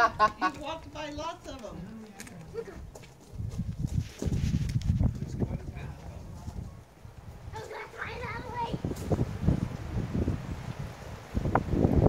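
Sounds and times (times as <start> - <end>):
wind buffeting microphone: 2.4 - 12.0.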